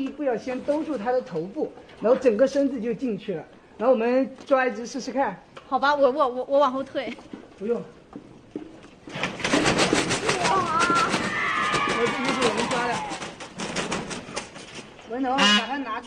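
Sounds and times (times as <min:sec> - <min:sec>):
bird wings flapping: 0:09.1 - 0:15.0.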